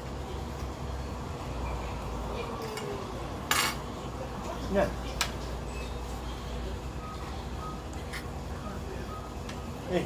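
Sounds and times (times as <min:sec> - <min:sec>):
cutlery clattering on crockery: 0:03.5 - 0:03.8.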